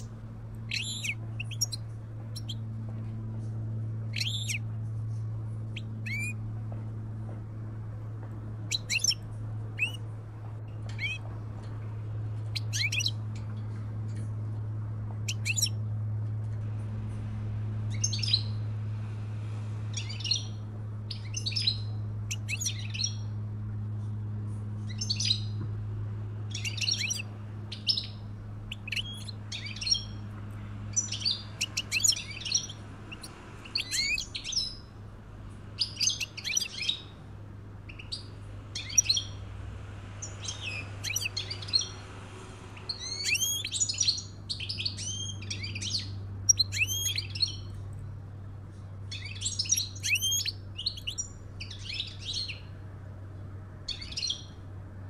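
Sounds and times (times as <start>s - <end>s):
steady low hum: 0.0s - 55.0s
finches twittering: 0.7s - 2.6s, 4.1s - 4.6s, 5.7s - 6.4s, 8.6s - 10.0s, 12.5s - 13.2s, 15.2s - 15.8s, 26.5s - 30.2s, 30.9s - 34.8s, 35.8s - 37.1s, 37.9s - 39.4s, 40.2s - 42.0s, 42.8s - 47.6s, 49.1s - 52.6s.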